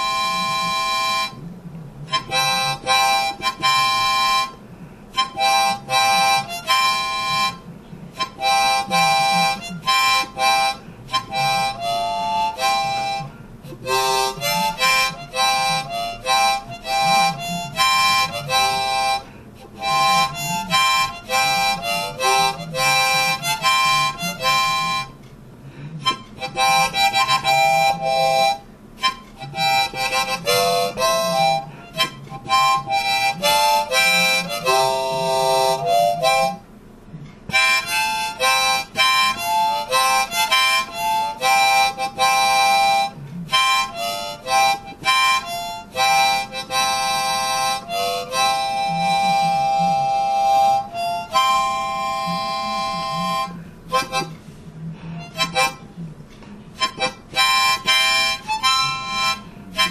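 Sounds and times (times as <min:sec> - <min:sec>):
harmonica playing: 0:00.0 - 0:59.9.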